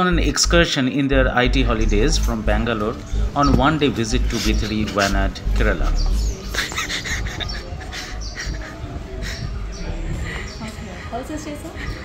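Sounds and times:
low rumble on microphone: 0:00.0 - 0:10.6
birds chirping: 0:00.0 - 0:12.0.

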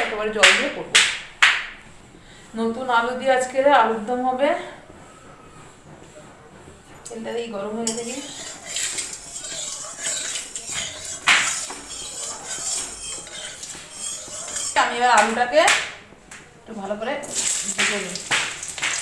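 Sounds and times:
metal utensils clinking on pan: 0:07.8 - 0:15.8, 0:17.2 - 0:19.0.

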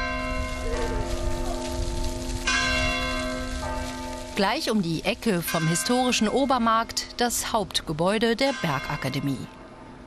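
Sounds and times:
church bell ringing: 0:00.0 - 0:07.2, 0:08.2 - 0:10.0.

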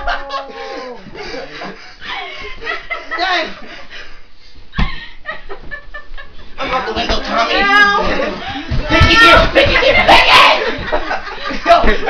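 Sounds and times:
person squealing cry: 0:00.0 - 0:01.1
loud voices: 0:00.0 - 0:01.8, 0:06.6 - 0:12.0.

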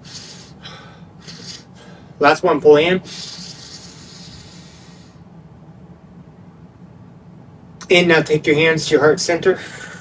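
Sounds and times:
man's deep breath in: 0:00.0 - 0:02.2, 0:03.1 - 0:05.2.

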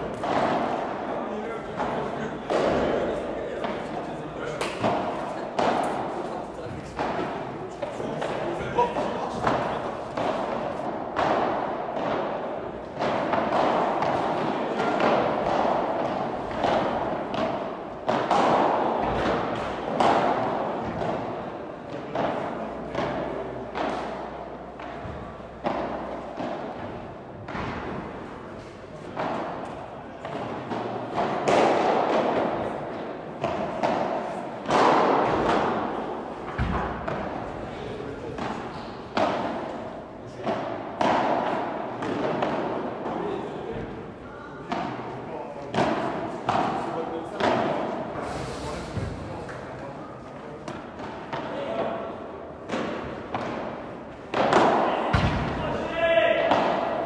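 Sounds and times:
rackets striking ball: 0:00.0 - 0:57.0.

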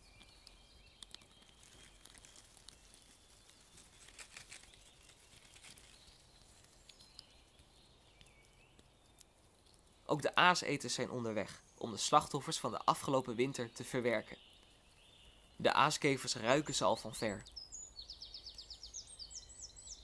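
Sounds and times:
small clicks and crackles: 0:00.0 - 0:10.2, 0:14.4 - 0:15.5.

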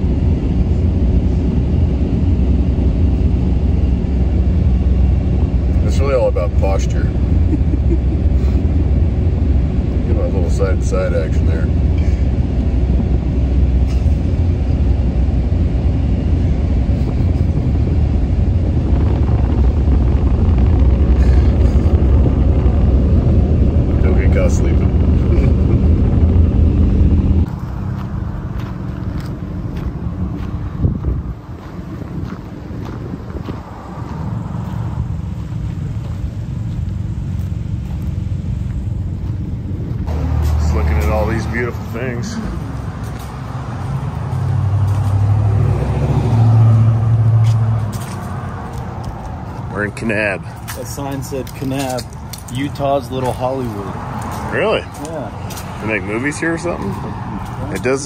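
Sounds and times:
outdoor street background: 0:00.0 - 0:58.0
vehicle cabin road rumble: 0:00.0 - 0:58.0.

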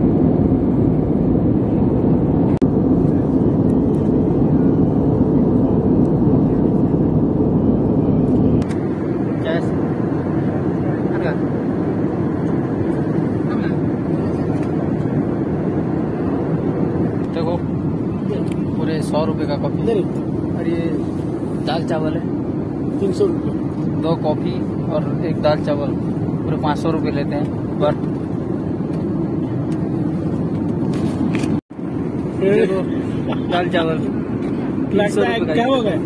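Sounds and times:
jet airliner cabin noise: 0:00.0 - 0:36.0
passengers talking: 0:01.8 - 0:36.0.

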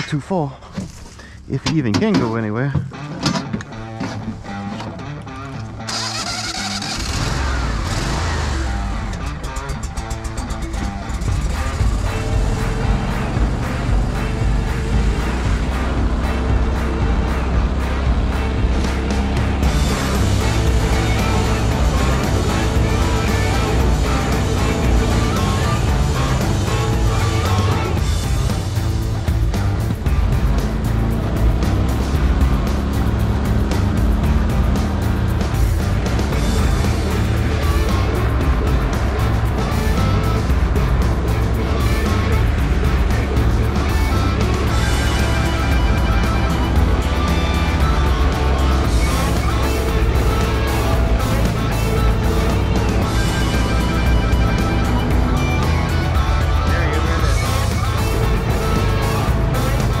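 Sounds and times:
background music: 0:00.0 - 1:00.0
boat motor running: 0:00.8 - 1:00.0.

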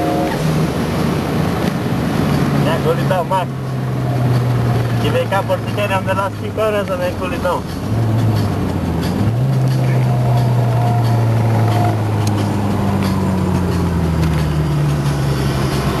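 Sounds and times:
car engine running: 0:00.0 - 0:16.0.

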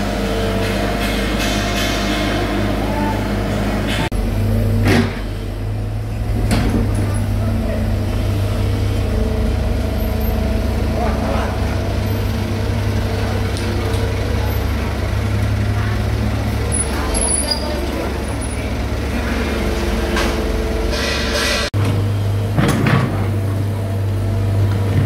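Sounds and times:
diesel engines droning: 0:00.0 - 0:25.0.

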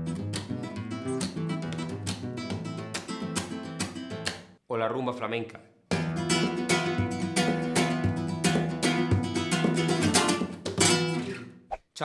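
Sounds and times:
flamenco guitar strumming: 0:00.0 - 0:04.4, 0:05.9 - 0:11.6.

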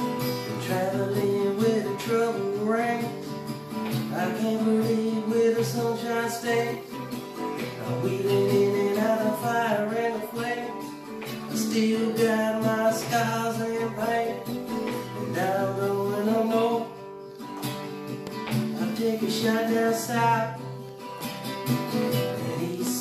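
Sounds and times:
man singing: 0:00.0 - 0:17.0, 0:18.6 - 0:20.9, 0:22.1 - 0:23.0
acoustic guitar strumming: 0:00.0 - 0:23.0.

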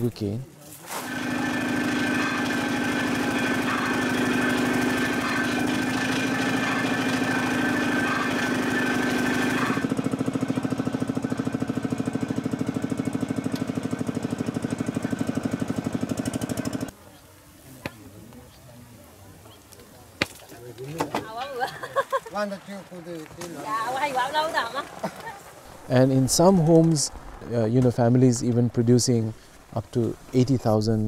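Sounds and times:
sugarcane crushing mill running: 0:00.8 - 0:16.9, 0:21.7 - 0:31.0.

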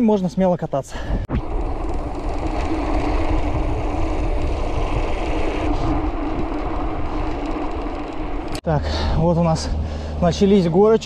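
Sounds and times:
wind noise on microphone: 0:01.0 - 0:10.0
bike tyres rumbling on bricks: 0:01.3 - 0:10.1.

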